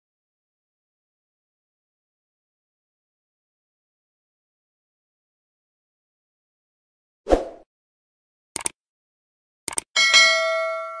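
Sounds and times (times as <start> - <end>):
notification bell ding: 10.0 - 11.0.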